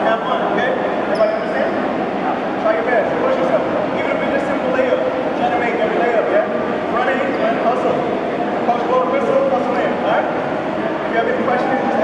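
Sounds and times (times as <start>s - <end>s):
man speaking: 2.6s - 10.4s, 11.0s - 12.0s.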